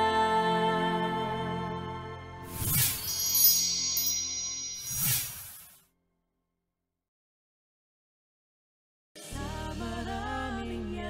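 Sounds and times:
shimmering chime: 0:02.5 - 0:05.8.

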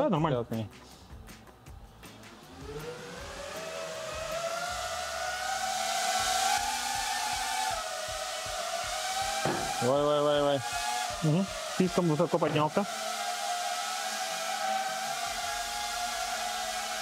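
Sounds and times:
drone propellers whining: 0:02.0 - 0:17.0.

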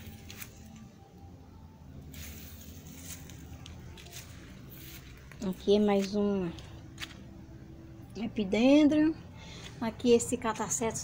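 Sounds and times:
soft scuffs and clicks: 0:02.2 - 0:07.3.

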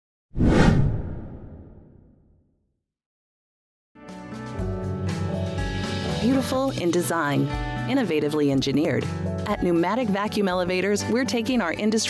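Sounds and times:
deep whoosh: 0:00.4 - 0:02.1.

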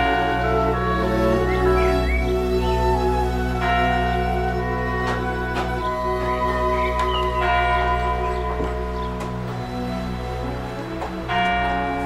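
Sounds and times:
church bells ringing: 0:00.0 - 0:12.0.

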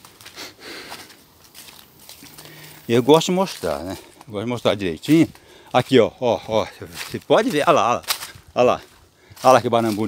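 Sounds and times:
rustling footsteps on leaves: 0:00.0 - 0:10.0
faint breathing: 0:00.2 - 0:01.2, 0:02.2 - 0:02.9, 0:05.3 - 0:05.8, 0:08.3 - 0:09.5.

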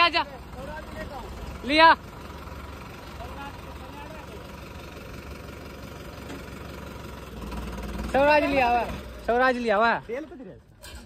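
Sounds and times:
diesel tractor engine idling: 0:00.0 - 0:11.0.

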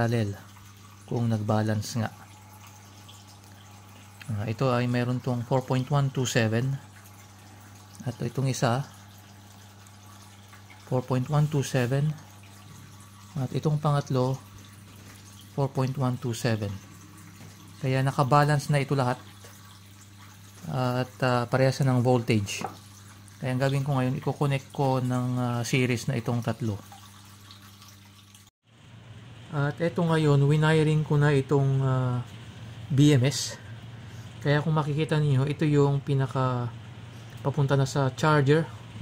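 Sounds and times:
low steady hum: 0:00.0 - 0:39.0.

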